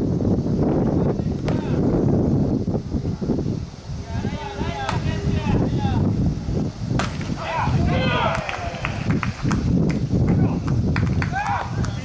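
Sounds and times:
baseball hitting catcher's mitt: 7.0 - 7.3
people shouting: 7.3 - 9.1, 11.2 - 11.9.

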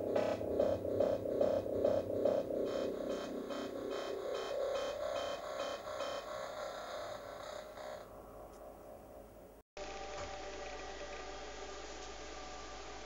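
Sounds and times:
pulsing electronic music: 0.0 - 8.1
low hum: 0.0 - 13.0.

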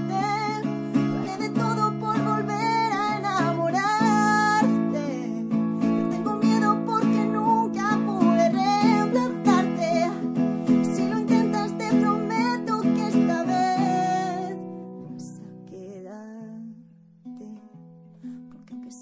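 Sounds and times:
plucked guitar notes: 0.0 - 15.7
woman singing ballad: 0.0 - 17.8
acoustic guitar strumming: 0.0 - 19.0.

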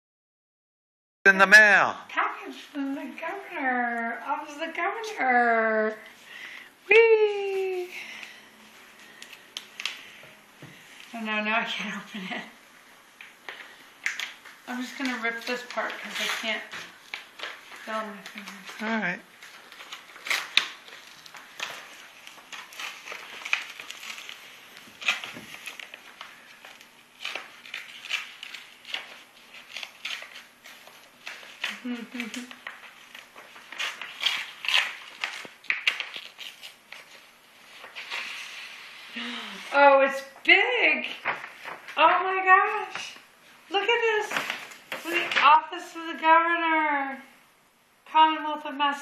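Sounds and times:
envelope flap crackles: 13.2 - 38.6, 41.0 - 42.0, 44.2 - 45.5
paper envelope rustling: 13.2 - 39.4, 41.0 - 43.0, 43.8 - 45.6.

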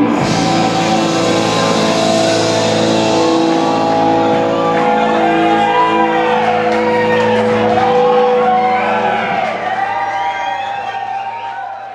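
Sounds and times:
electric guitar chord ringing: 0.0 - 9.6
audience whooping and shouting: 0.0 - 11.9.

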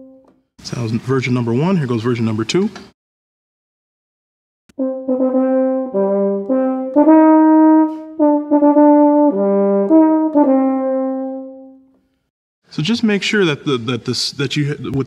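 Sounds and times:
euphonium playing: 4.7 - 11.7.

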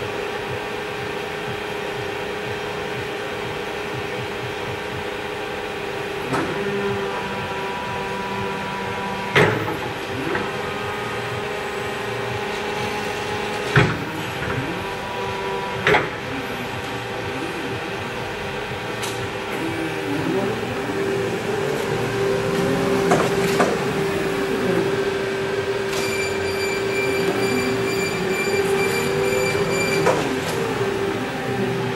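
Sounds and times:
higher whine: 0.0 - 31.9
hydraulic pump motor humming: 0.0 - 31.9.

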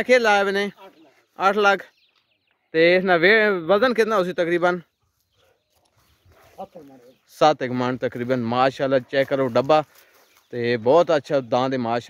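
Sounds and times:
faint scattered outdoor sounds: 0.0 - 12.0.

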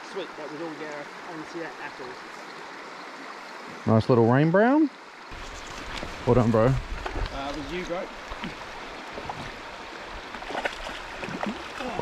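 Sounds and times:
creek water running: 0.0 - 12.0.

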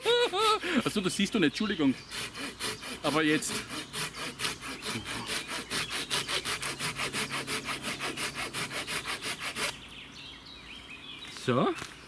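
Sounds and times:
pruning saw cutting wood: 0.0 - 9.8.

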